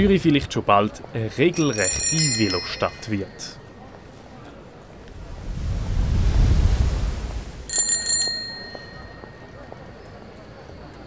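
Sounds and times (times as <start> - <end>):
bicycle bell ringing: 1.5 - 3.7, 7.7 - 9.9
low rushing swell: 5.0 - 7.7.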